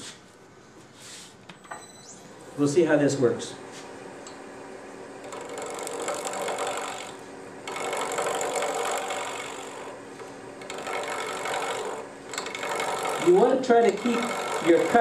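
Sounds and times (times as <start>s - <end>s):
wood lathe humming: 5.0s - 15.0s
chisel cutting spinning wood: 5.2s - 15.0s.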